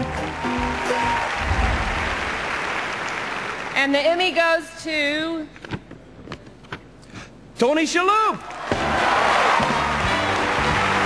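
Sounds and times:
audience applauding: 0:00.0 - 0:03.8, 0:08.5 - 0:11.0.

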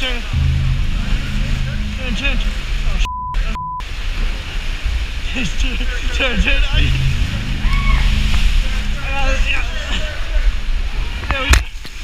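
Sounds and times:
rough sea water churning: 0:00.0 - 0:03.1, 0:03.8 - 0:12.0
censor bleeps: 0:02.9 - 0:03.8
people shouting: 0:07.6 - 0:08.1.

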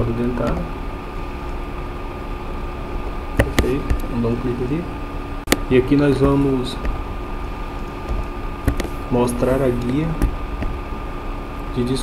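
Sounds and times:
room and microphone hum and hiss: 0:00.0 - 0:12.0
person speaking: 0:05.6 - 0:07.0, 0:08.7 - 0:10.3.

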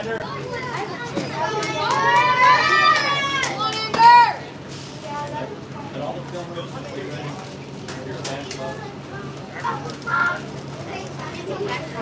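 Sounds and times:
background chatter: 0:00.0 - 0:12.0
children shouting: 0:00.3 - 0:04.5, 0:09.5 - 0:10.5
high loud child's call: 0:01.7 - 0:04.4.

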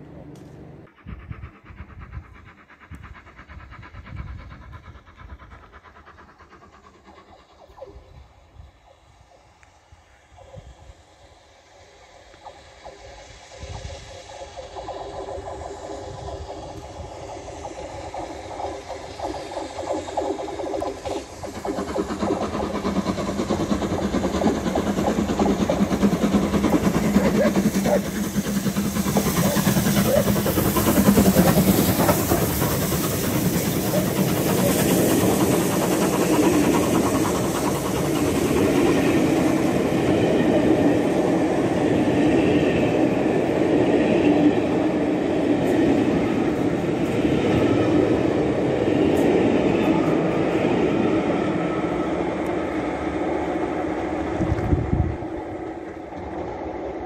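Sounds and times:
steam locomotive passing: 0:00.0 - 0:57.0
train coaches clickety-clack: 0:00.0 - 0:57.0
hiss of steam: 0:00.8 - 0:57.0.

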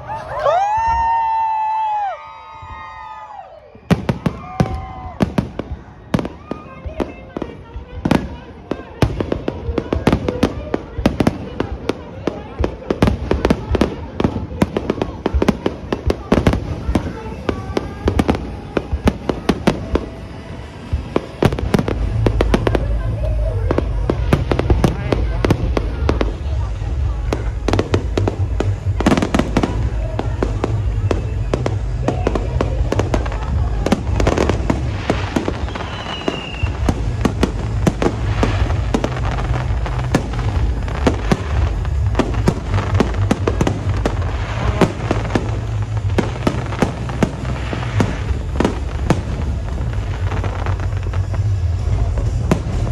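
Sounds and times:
fireworks bangs and crackles: 0:00.0 - 0:52.9
music with heavy bass: 0:21.0 - 0:52.9.

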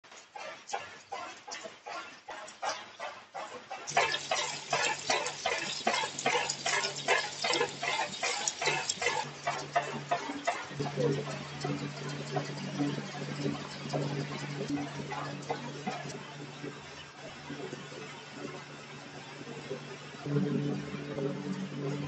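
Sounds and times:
machine clicking: 0:03.9 - 0:12.9.

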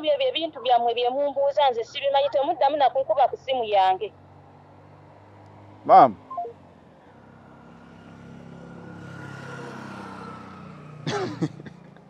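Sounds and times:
phone beeps stepping down: 0:06.3 - 0:06.5.

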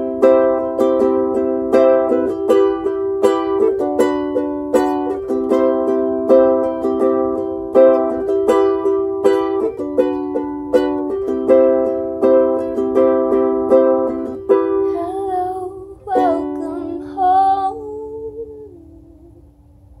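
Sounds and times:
person singing wordless line: 0:14.8 - 0:19.4.

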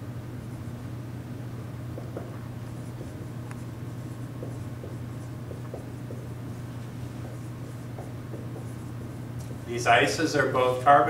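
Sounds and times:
low room hum: 0:00.0 - 0:11.0
marker writing on whiteboard: 0:02.0 - 0:10.2.

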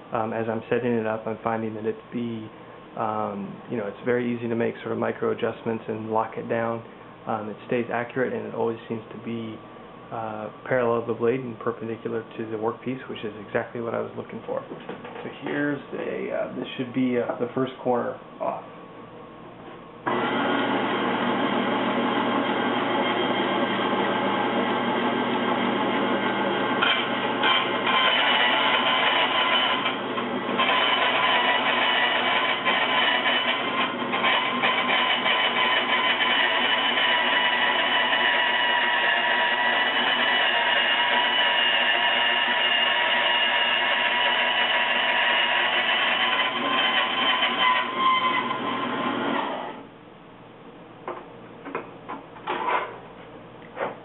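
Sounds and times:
bandsaw cutting sheet metal: 0:20.1 - 0:49.8.

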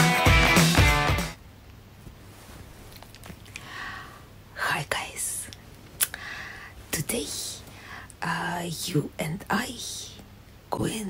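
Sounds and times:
woman whispering: 0:04.5 - 0:05.6, 0:06.9 - 0:11.0.

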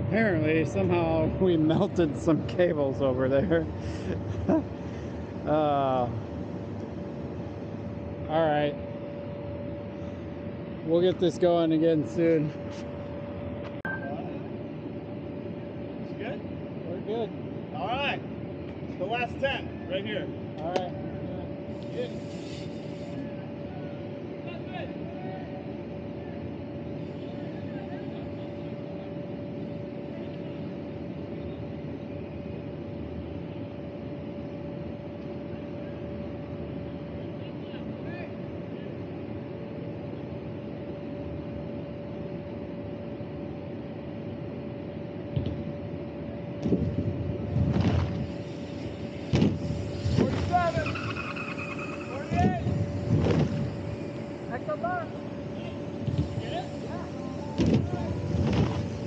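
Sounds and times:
blower humming and whining: 0:00.0 - 0:59.0.

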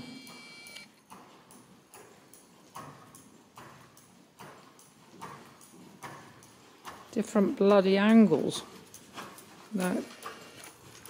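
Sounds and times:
horse hoofbeats on sand: 0:01.1 - 0:11.0.

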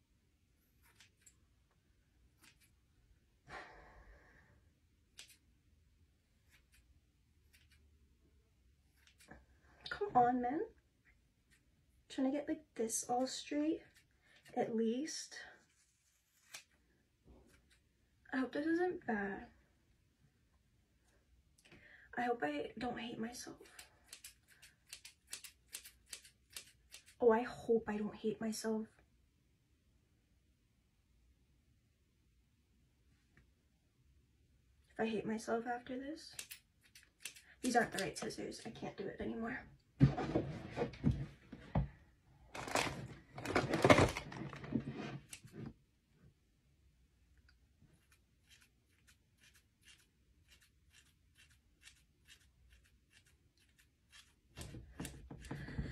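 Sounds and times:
scissors snipping hair: 0:00.8 - 0:01.4, 0:02.4 - 0:02.8, 0:05.1 - 0:05.4, 0:06.4 - 0:07.8, 0:08.9 - 0:09.3, 0:16.4 - 0:16.8, 0:23.5 - 0:27.2, 0:36.3 - 0:38.7, 0:48.0 - 0:54.5.

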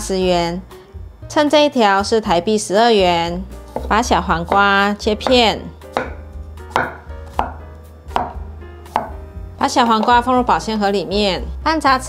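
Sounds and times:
knife striking cutting board: 0:03.7 - 0:09.2, 0:09.8 - 0:10.3.

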